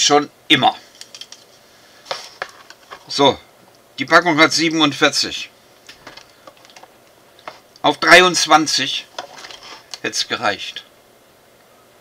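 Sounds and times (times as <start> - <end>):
person speaking: 2.1 - 5.6, 7.5 - 10.9.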